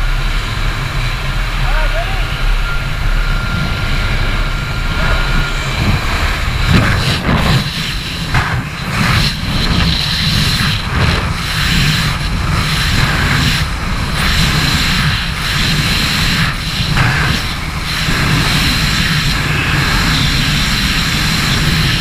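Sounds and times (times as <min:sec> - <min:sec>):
steady high whine: 0:00.0 - 0:22.0
wind buffeting microphone: 0:00.0 - 0:22.0.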